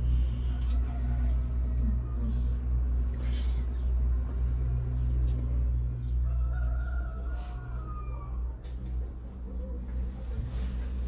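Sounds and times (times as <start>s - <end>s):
gondola low rumble: 0.0s - 11.0s.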